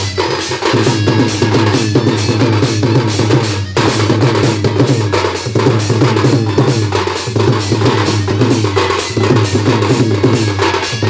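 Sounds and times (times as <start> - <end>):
fast drumming: 0.0 - 11.0
wind instrument melody: 0.0 - 11.0.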